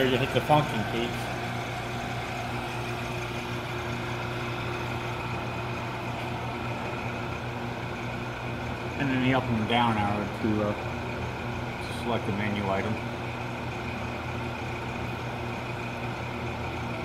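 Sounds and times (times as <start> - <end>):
glove box blower humming: 0.0 - 17.0.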